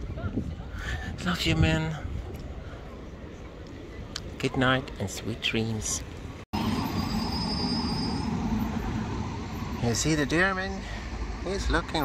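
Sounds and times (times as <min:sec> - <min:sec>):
road traffic rumble: 0:02.0 - 0:12.0.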